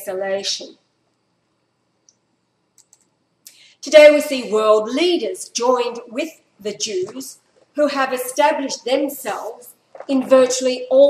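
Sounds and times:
computer mouse clicking: 0:02.8 - 0:03.1.

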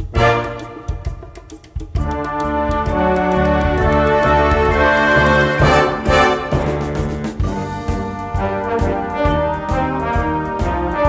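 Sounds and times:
trombones and trumpets: 0:00.0 - 0:01.4, 0:02.0 - 0:11.0
percussion hits: 0:00.0 - 0:11.0.

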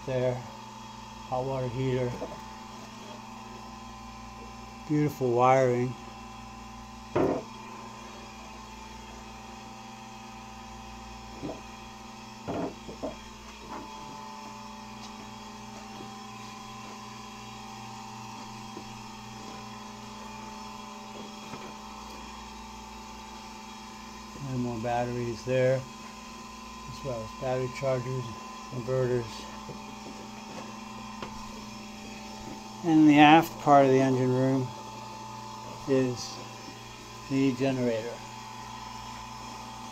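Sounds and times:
air conditioner humming: 0:00.0 - 0:39.9
man talking: 0:24.4 - 0:25.9, 0:26.9 - 0:29.5, 0:32.8 - 0:34.7, 0:35.8 - 0:36.4, 0:37.3 - 0:38.2.

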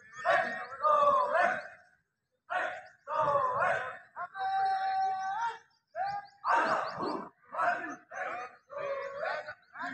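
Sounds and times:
man calling out commands: 0:00.2 - 0:01.8, 0:02.4 - 0:09.9.

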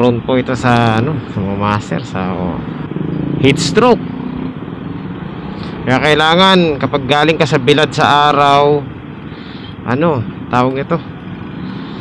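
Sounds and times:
motorcycle engines idling: 0:00.0 - 0:12.0
street noise: 0:00.0 - 0:12.0.

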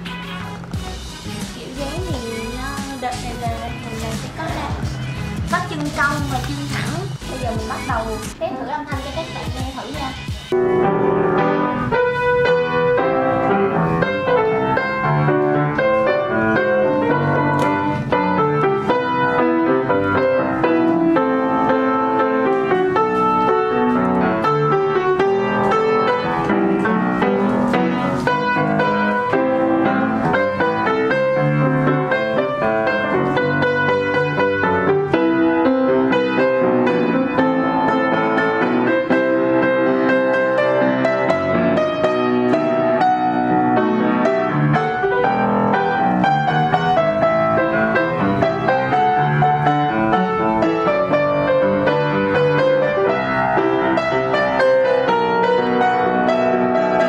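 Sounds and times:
upright piano piece: 0:00.0 - 0:57.0.

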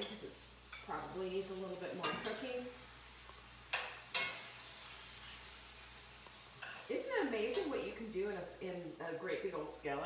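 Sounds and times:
food sizzling in a skillet: 0:00.0 - 0:10.0.

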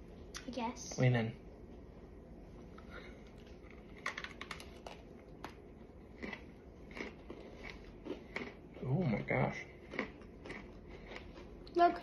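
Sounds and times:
soft chewing: 0:02.7 - 0:11.8
crunching cookies: 0:03.3 - 0:11.8.

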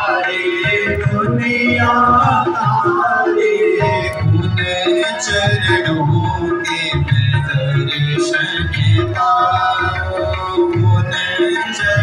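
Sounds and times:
devotional singing: 0:00.0 - 0:12.0
instrumental accompaniment: 0:00.0 - 0:12.0
low pulsing beat: 0:03.9 - 0:06.5.

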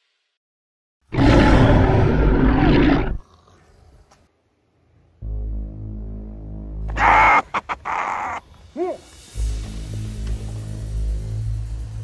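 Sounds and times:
loud deep roar: 0:01.1 - 0:03.2.

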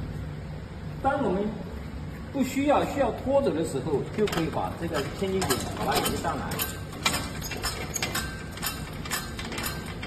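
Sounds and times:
trailer jack crank clicking: 0:04.2 - 0:10.0.

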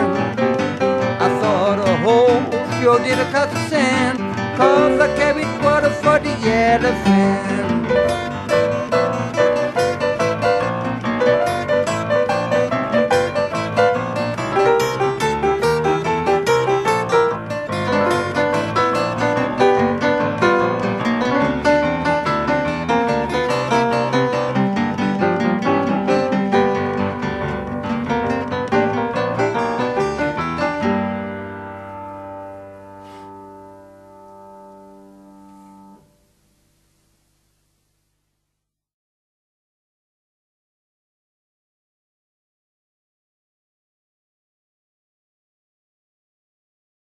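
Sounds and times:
piano music: 0:00.0 - 0:36.2.

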